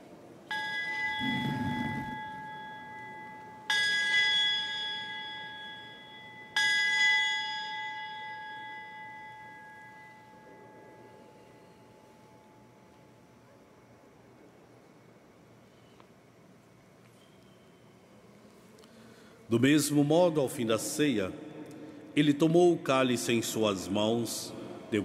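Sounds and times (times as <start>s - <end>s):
altar bell ringing: 0.5s - 11.2s.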